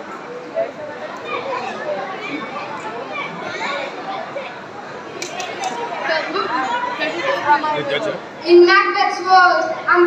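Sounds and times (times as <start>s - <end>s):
children's voices chattering: 0.0s - 10.0s.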